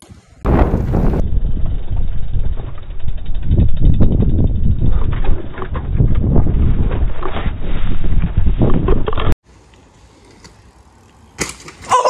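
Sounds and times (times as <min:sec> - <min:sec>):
wind buffeting microphone: 0:00.4 - 0:09.4.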